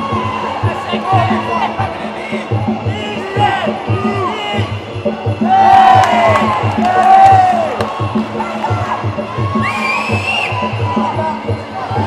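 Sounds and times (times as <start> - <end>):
background music with steady beat: 0.0 - 12.0
spectators shouting and cheering: 0.0 - 12.0.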